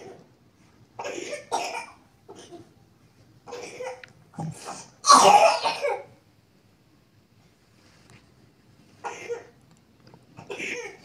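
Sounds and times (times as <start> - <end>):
person coughing: 3.5 - 6.1, 10.4 - 11.0.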